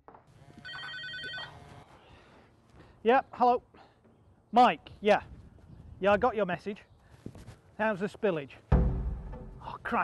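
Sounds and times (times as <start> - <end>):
mobile phone ringing: 0.5 - 1.8.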